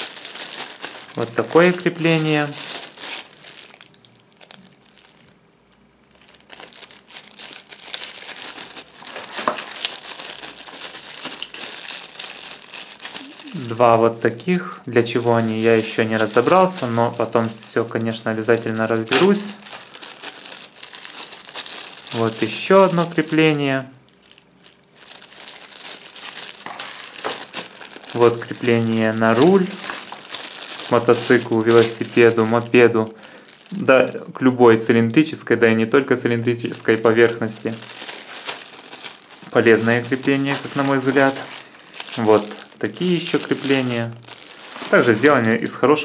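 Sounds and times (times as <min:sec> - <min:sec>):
plastic bags crinkling: 0:00.0 - 0:34.3, 0:36.3 - 0:46.0.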